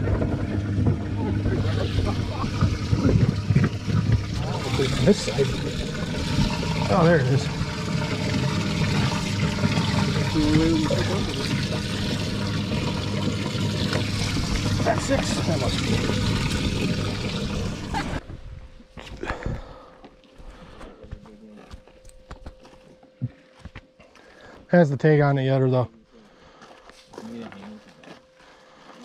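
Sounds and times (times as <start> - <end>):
pump humming: 0.0 - 18.2
water spraying and splashing: 1.2 - 18.2.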